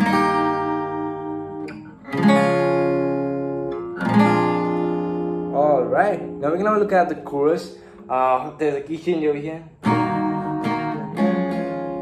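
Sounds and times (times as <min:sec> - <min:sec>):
acoustic guitar strummed chords: 0:00.0 - 0:12.0.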